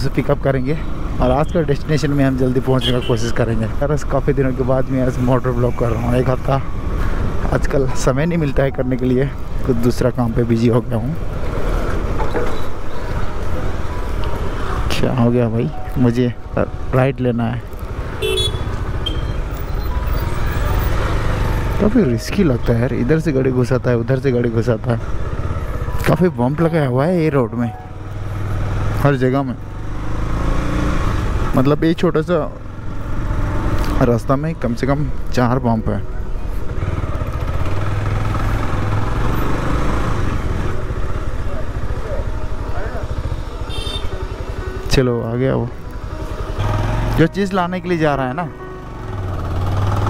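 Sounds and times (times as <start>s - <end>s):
wind and road noise: 0.0s - 50.0s
vehicle horn toot: 2.8s - 3.4s, 18.2s - 19.5s, 43.6s - 44.4s
motorcycle engine rumble: 17.7s - 50.0s
motorcycle engine running: 36.5s - 44.9s.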